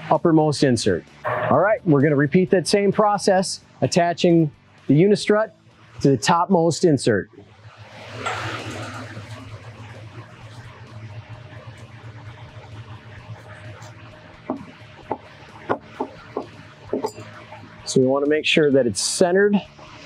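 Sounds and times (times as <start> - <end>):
low room hum: 7.2 - 20.0
brief rush of noise: 7.7 - 10.2.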